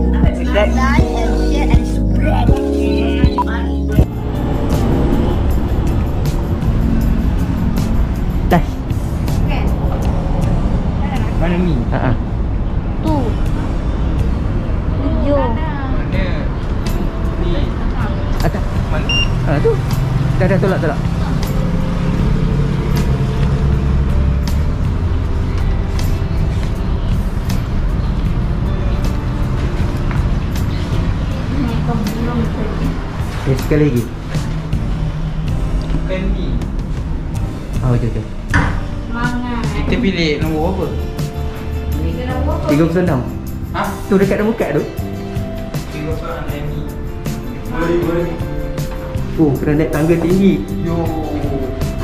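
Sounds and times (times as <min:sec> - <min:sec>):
vehicle engine running: 0:00.0 - 0:38.1
music: 0:00.0 - 0:52.0
road traffic rumble: 0:00.0 - 0:52.0.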